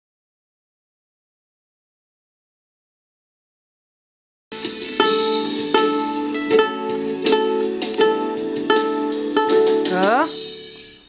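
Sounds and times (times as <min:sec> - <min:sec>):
violin pizzicato: 0:04.6 - 0:10.6.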